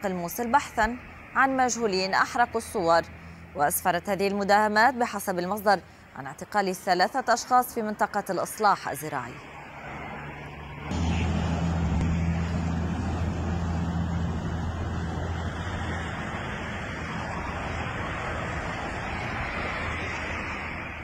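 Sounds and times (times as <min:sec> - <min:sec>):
rushing road traffic: 0:00.0 - 0:21.0
low engine hum: 0:09.8 - 0:21.0.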